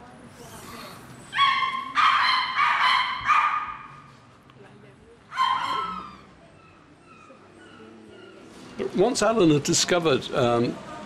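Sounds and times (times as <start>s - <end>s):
small dog yapping: 1.3s - 3.9s, 5.3s - 8.4s.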